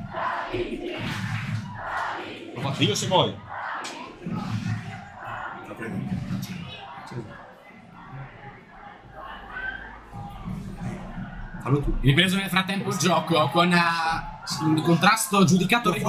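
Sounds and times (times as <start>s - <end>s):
distant crowd chanting and shouting: 0.0s - 16.0s.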